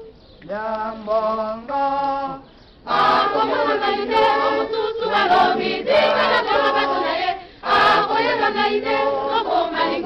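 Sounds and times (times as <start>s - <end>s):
choir singing gospel song: 2.8s - 10.0s.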